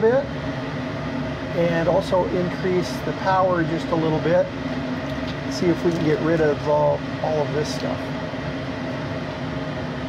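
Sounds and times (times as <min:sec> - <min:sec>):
laser cutter fans and pumps humming: 0:00.0 - 0:10.0.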